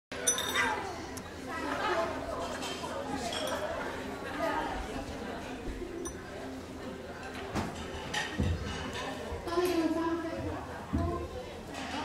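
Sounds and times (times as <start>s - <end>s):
people talking at once: 0.4s - 7.5s, 8.5s - 12.0s.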